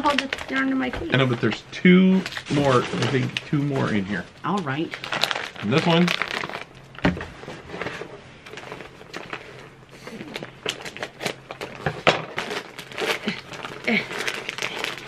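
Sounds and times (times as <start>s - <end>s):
wrapping paper crinkling: 0.0s - 15.0s.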